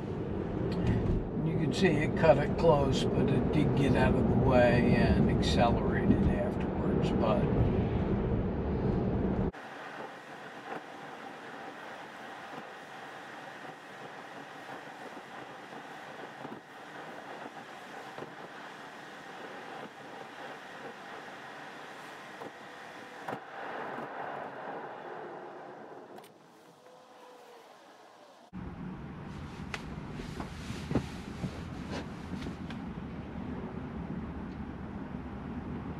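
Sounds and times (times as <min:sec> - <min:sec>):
road and tyre noise inside car: 0:00.0 - 0:35.9.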